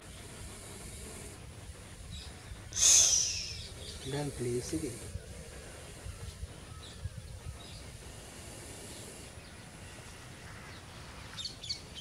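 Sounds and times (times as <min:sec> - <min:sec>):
faint bird chirps: 0:02.0 - 0:08.0.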